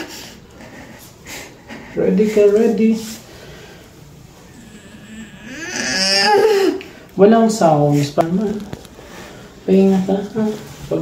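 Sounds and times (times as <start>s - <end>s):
woman groaning while pushing: 4.5s - 6.9s
woman breathing heavily: 9.0s - 9.6s.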